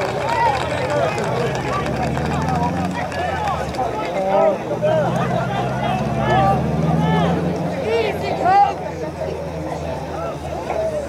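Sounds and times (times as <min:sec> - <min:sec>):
voices shouting and calling out: 0:00.0 - 0:11.0.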